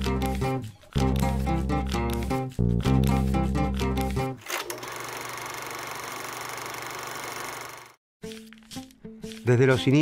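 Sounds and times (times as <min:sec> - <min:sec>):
background music: 0:00.0 - 0:04.4, 0:08.2 - 0:10.0
fast mechanical clatter: 0:04.5 - 0:08.0.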